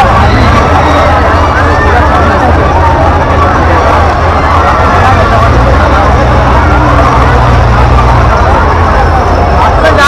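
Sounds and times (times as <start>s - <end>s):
crowd chatter: 0.0s - 10.0s
loud low rumble: 0.0s - 10.0s.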